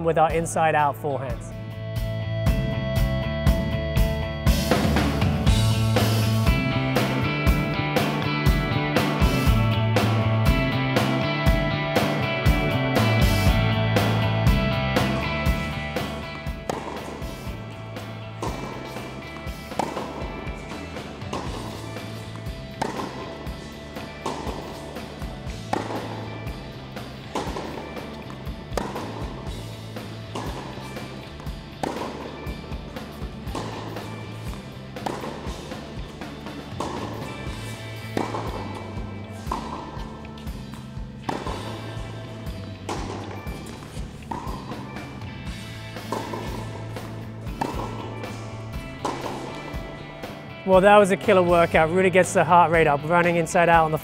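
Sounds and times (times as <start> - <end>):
background music with bass line: 0.0 - 54.0
racquet striking tennis ball: 5.5 - 52.4.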